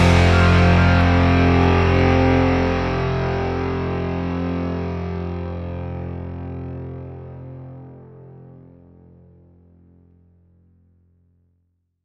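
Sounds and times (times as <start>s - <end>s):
distorted electric guitar chord ringing: 0.0s - 9.9s.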